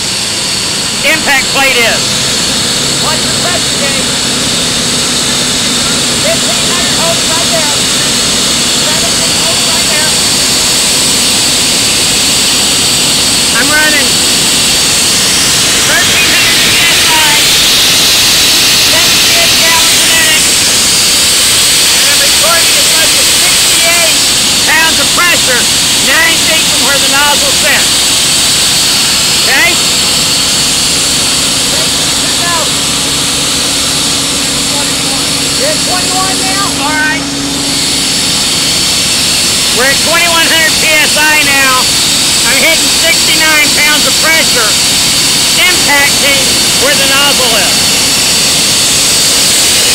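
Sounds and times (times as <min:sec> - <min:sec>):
engine and water pump running: 0:00.0 - 0:49.9
high-pressure water jet hissing: 0:00.0 - 0:49.9.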